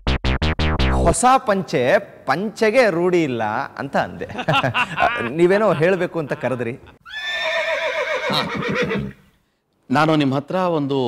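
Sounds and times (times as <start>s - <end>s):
horse whinnying: 7.0s - 9.4s.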